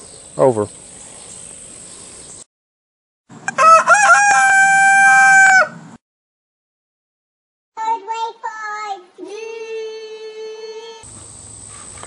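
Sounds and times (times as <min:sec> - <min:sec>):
rooster crowing: 0:03.4 - 0:06.0.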